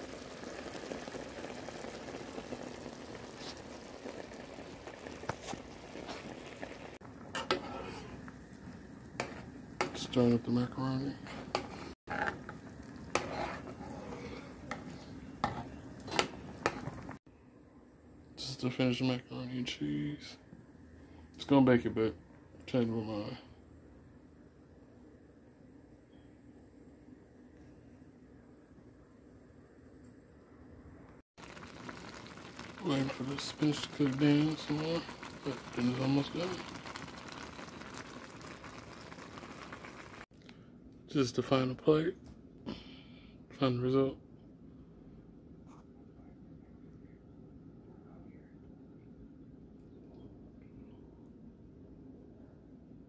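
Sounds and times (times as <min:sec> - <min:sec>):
pot bubbling and crackling: 0:00.0 - 0:17.2, 0:31.4 - 0:40.4
utensil stirring macaroni in a pan: 0:00.1 - 0:17.2, 0:31.4 - 0:40.2.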